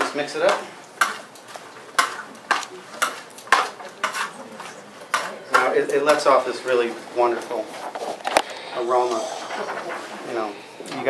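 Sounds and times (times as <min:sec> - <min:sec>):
metal tongs clacking on bowl: 0:00.0 - 0:06.3.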